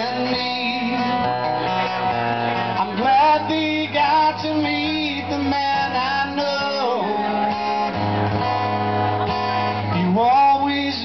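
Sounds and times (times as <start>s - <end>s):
man singing: 0.0s - 8.0s, 9.9s - 11.0s
acoustic guitar: 0.0s - 11.0s.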